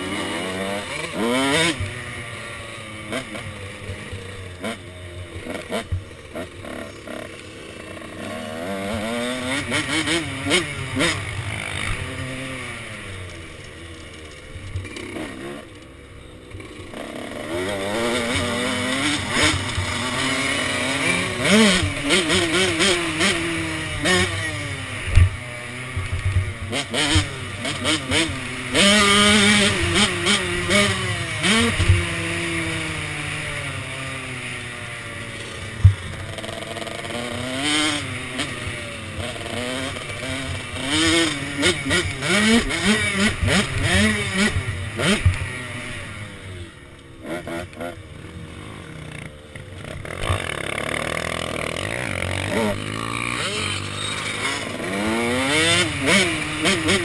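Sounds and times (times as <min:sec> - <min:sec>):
motocross bike engine revving: 0:00.0 - 0:57.0.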